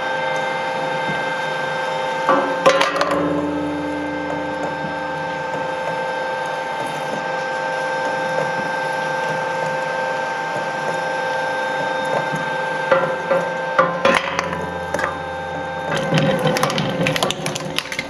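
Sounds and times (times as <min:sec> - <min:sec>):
shredder whining hum: 0:00.0 - 0:18.0.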